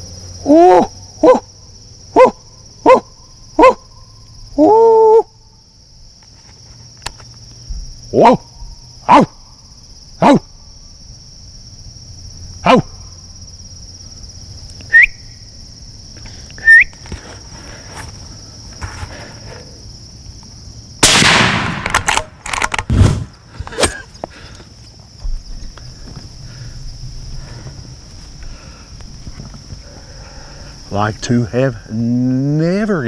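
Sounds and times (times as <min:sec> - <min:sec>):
insects shrilling: 0:00.0 - 0:33.0
person shouting: 0:00.4 - 0:01.4, 0:04.6 - 0:05.3
rifle shot: 0:21.0 - 0:23.3.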